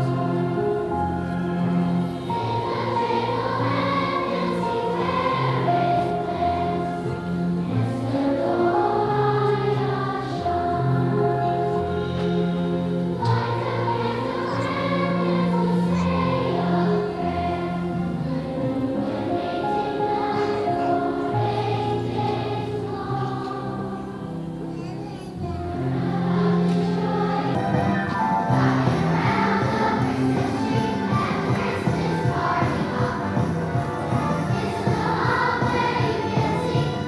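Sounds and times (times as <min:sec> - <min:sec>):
children's choir singing: 0:00.0 - 0:37.0.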